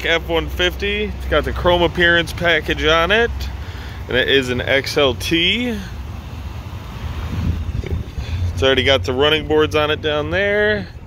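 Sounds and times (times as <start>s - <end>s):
wind on microphone: 7.2s - 8.5s.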